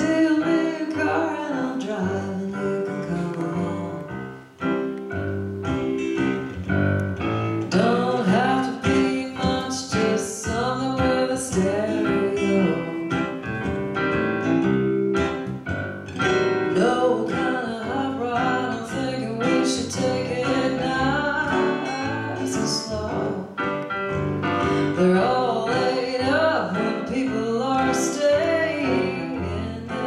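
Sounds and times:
woman singing: 0.0 - 4.3, 7.7 - 13.4, 16.7 - 23.7, 24.6 - 30.0
piano chords: 0.0 - 30.0.

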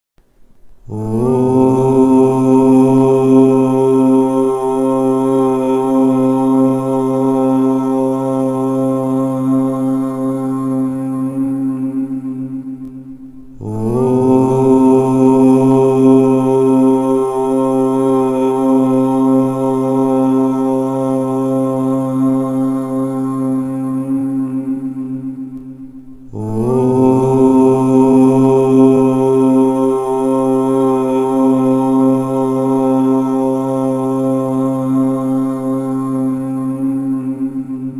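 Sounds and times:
low voice chanting om: 0.8 - 37.9.

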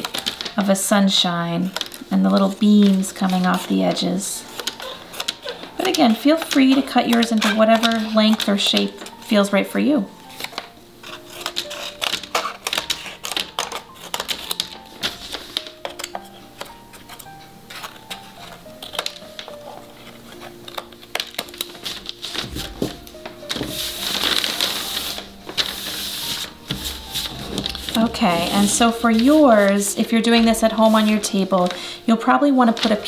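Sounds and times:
scissors snipping paper: 0.0 - 0.7, 1.6 - 9.5, 10.2 - 31.8, 32.6 - 33.0
paper rustling: 0.0 - 33.0
soft background music: 0.0 - 33.0.

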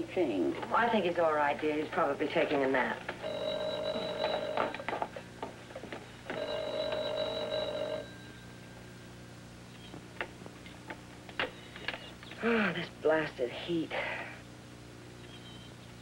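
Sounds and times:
telephone bell ringing: 3.2 - 5.0, 6.3 - 8.5.

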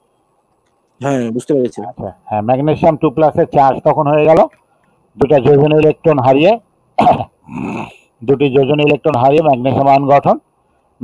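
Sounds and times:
man lecturing: 1.0 - 4.6, 5.2 - 6.6, 8.2 - 10.4.

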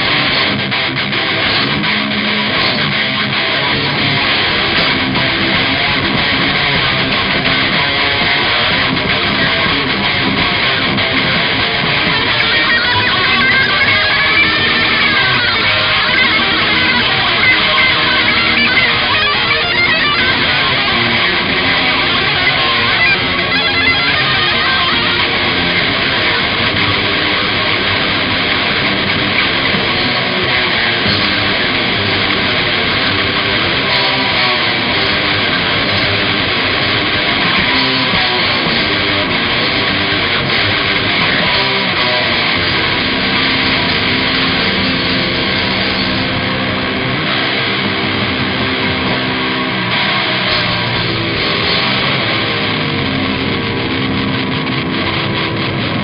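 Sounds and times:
distorted electric guitars: 0.0 - 56.0
drum kit: 0.0 - 56.0.

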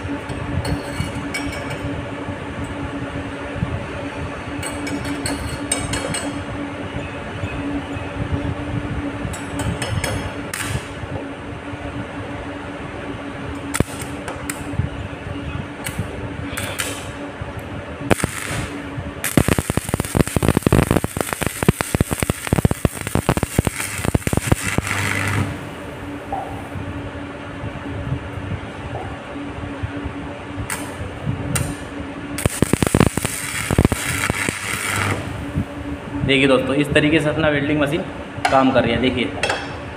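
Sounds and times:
steady electrical hum: 0.0 - 39.9
welding arc crackling and spitting: 10.5 - 10.9, 13.6 - 14.6, 16.6 - 17.2, 18.1 - 26.0, 30.6 - 31.8, 32.4 - 35.7
welding rod scratching: 18.1 - 25.6, 32.4 - 35.4.

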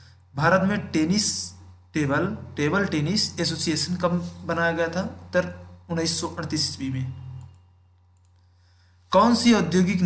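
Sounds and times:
low electrical hum: 0.0 - 10.0
person speaking: 0.2 - 7.6, 9.1 - 10.0
faint clicks: 7.4 - 8.5.

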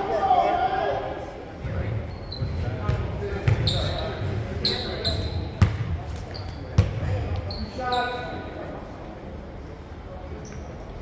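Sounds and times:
voices echoing: 0.0 - 11.0
sneakers squeaking on court: 1.9 - 8.5, 10.4 - 10.9.

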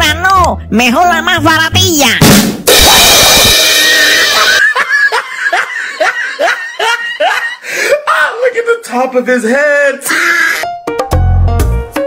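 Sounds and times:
cymbal crash: 2.2 - 4.6.

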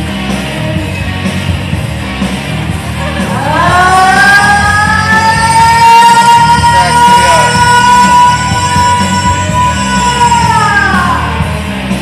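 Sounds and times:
rock backing track: 0.0 - 12.0
woman singing karaoke: 3.3 - 11.5.

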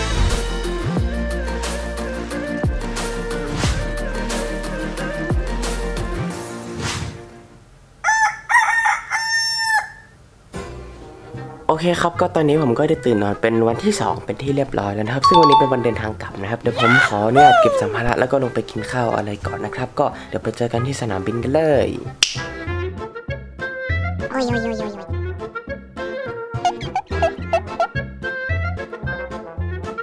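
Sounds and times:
rooster crowing: 8.0 - 10.2
upbeat music with bass: 15.2 - 16.1
finger snap: 22.2 - 22.6.

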